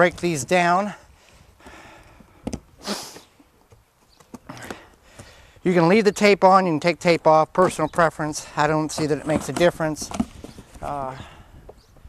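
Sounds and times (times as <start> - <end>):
cardboard scraping rasp: 9.0 - 10.6.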